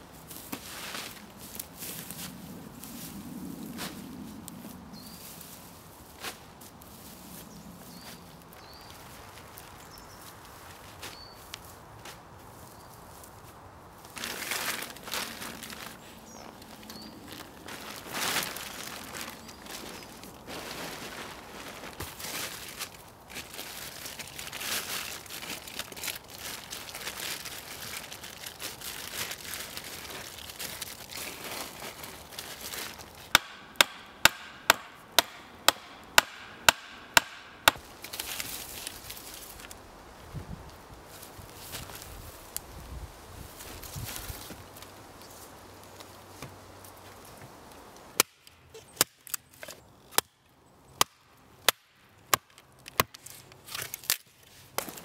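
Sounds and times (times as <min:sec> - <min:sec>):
tarp rustling and crinkling: 0:00.0 - 0:33.3, 0:37.8 - 0:39.9, 0:41.0 - 0:47.5, 0:53.2 - 0:55.0
sharp hammer strikes: 0:33.3 - 0:37.8
hatchet chopping kindling: 0:33.3 - 0:37.9
light wood cracks: 0:51.0 - 0:55.0.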